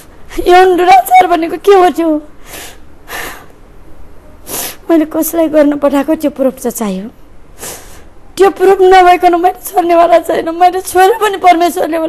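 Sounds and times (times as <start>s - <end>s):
woman speaking: 0.0s - 2.3s, 4.8s - 7.2s, 8.4s - 12.0s
sniff: 2.4s - 3.5s, 4.4s - 4.9s, 7.6s - 8.1s
woman gasping breaths: 2.4s - 3.5s.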